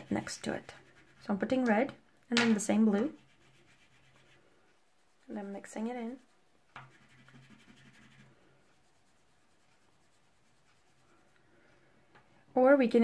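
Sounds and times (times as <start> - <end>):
pastel rubbing on paper: 0.0 - 1.6, 2.8 - 11.3.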